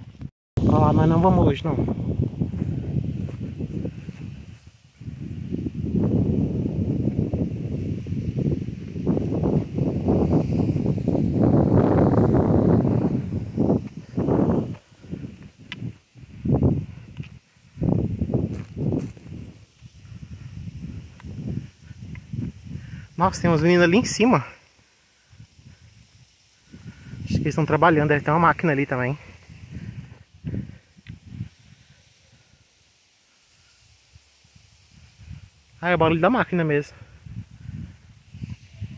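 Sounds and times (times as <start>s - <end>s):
footsteps through dry grass: 1.8s - 22.8s.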